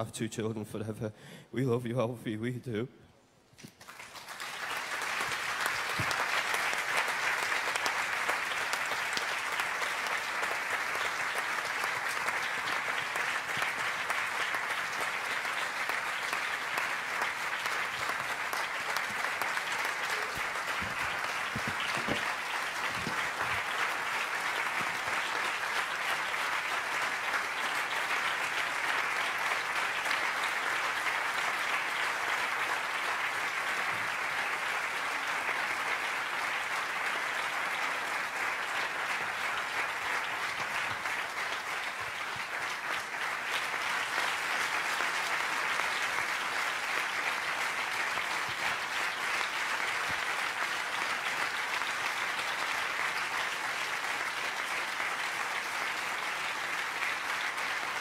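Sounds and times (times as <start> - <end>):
large audience applauding: 3.6 - 58.0.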